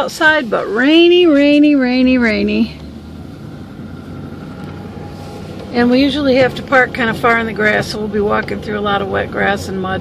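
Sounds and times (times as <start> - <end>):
car cabin road and engine hum: 0.0 - 10.0.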